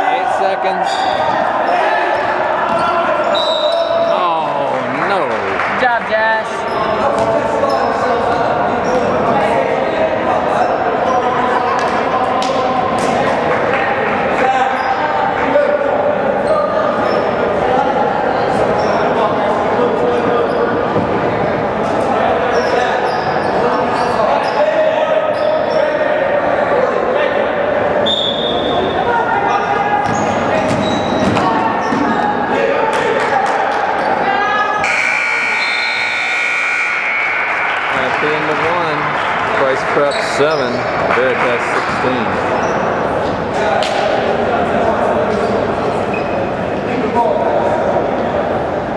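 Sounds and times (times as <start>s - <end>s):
spectators chattering: 0.0s - 48.9s
sneakers squeaking: 0.8s - 4.3s, 6.5s - 9.3s, 14.7s - 15.0s, 16.4s - 17.4s, 20.4s - 20.8s, 22.5s - 25.9s, 30.0s - 32.3s, 41.9s - 43.5s, 45.3s - 46.6s
scoreboard buzzer: 34.8s - 37.8s.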